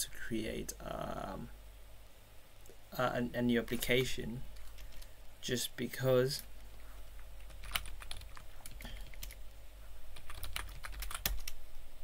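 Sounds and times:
faint low hum: 0.0 - 12.0
keyboard typing: 3.7 - 5.1, 7.4 - 9.4, 10.2 - 11.6.

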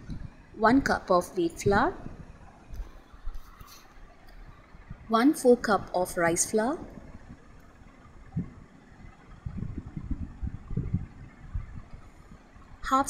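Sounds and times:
low uneven rumble: 0.0 - 13.0.

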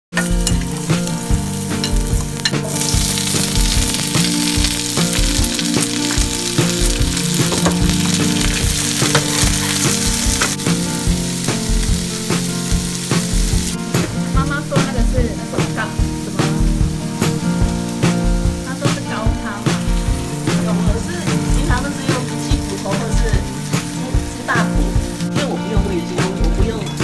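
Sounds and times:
vegetables sizzling in hot oil: 0.1 - 26.1
metal spatula scraping a pan: 1.8 - 10.6.

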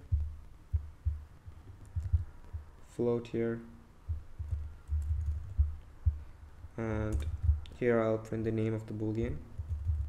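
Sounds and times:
keyboard typing: 1.6 - 2.6, 4.4 - 5.9, 9.1 - 10.0.

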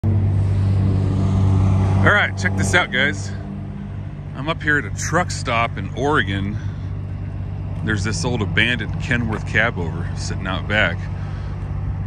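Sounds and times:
engine idling: 0.0 - 12.0.

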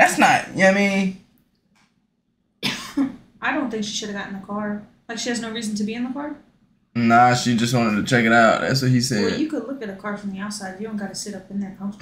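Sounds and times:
person coughing: 2.6 - 3.2
person speaking: 7.0 - 9.5.

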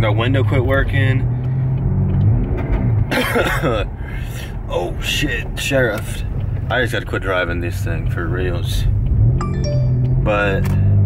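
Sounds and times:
car engine and exhaust droning: 0.0 - 11.0
person coughing: 3.1 - 3.9.

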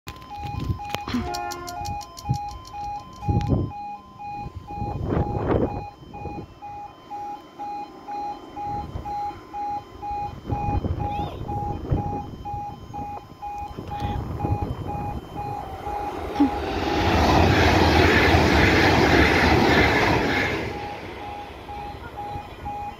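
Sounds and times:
level crossing alarm beeping: 0.1 - 22.9
train passing: 1.0 - 22.9.

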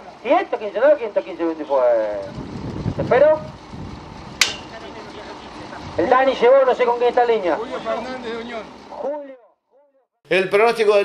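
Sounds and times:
low outdoor background noise: 0.0 - 11.0
sharp ringing click: 4.4 - 4.7.

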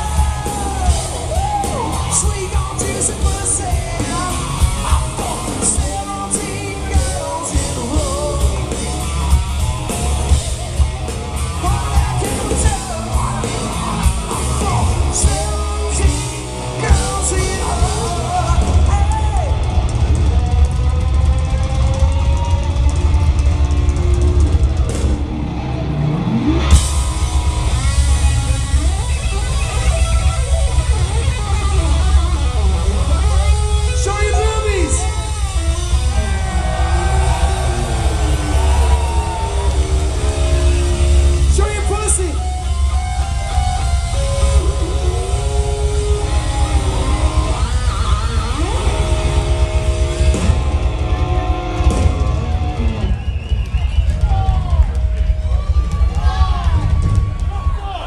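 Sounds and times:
distorted electric guitar: 0.0 - 57.7
bass guitar: 0.0 - 58.0
drum kit: 0.0 - 58.0.

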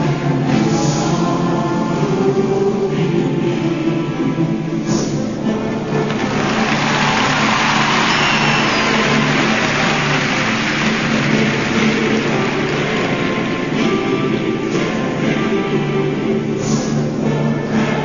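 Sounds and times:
dance music: 6.0 - 18.0
audience applauding and cheering: 6.1 - 14.1.

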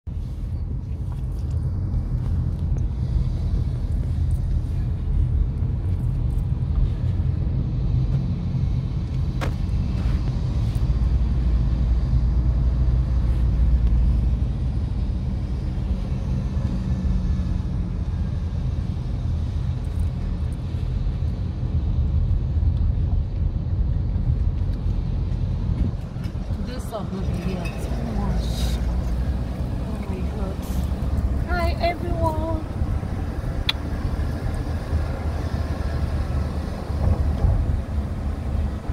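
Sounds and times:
car engine and road rumble: 0.0 - 38.9.

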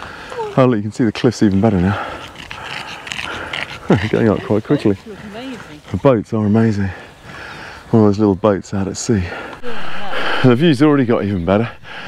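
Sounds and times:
dog panting: 1.6 - 6.2.

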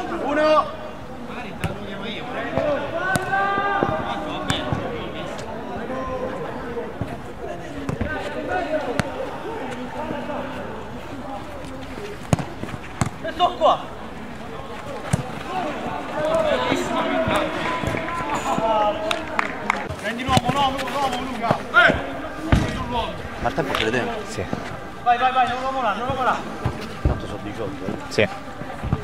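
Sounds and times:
players shouting: 0.0 - 29.0
football kicked: 12.3 - 13.2, 15.0 - 15.5.

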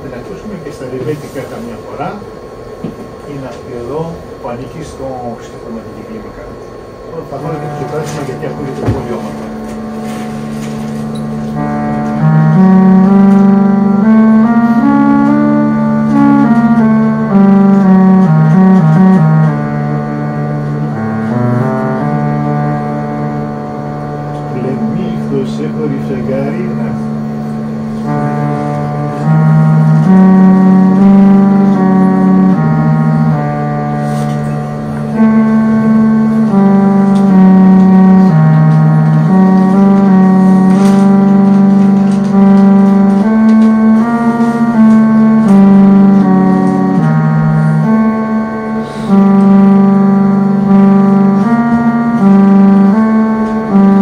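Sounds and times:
organ-like melody notes: 0.0 - 54.0
low drone: 6.9 - 54.0.

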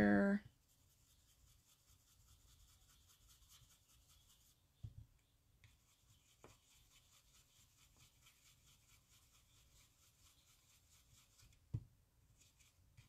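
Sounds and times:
brush rubbing on cardstock: 0.5 - 4.6, 5.6 - 11.7, 12.3 - 13.0
soft taps: 11.6 - 11.9.

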